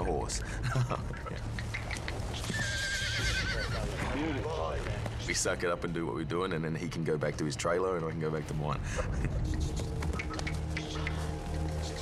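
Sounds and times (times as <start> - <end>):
horse neighing: 2.3 - 4.5.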